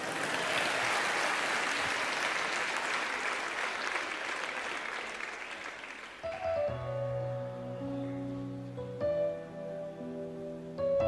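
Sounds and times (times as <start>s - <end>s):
audience applauding: 0.0s - 6.8s.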